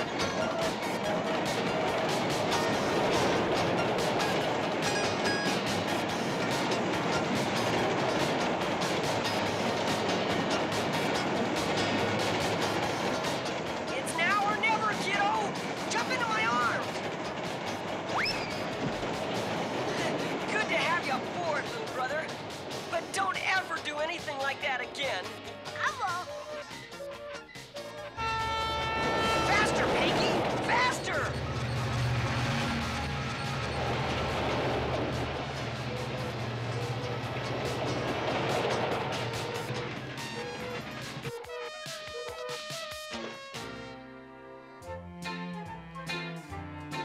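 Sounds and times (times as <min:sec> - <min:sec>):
railway car rolling on track: 0:00.0 - 0:43.9
background music: 0:00.0 - 0:47.0
moving train rumble: 0:00.0 - 0:47.0
high-pitched wordless vocal: 0:22.9 - 0:26.6
train whistle blast: 0:26.3 - 0:31.5.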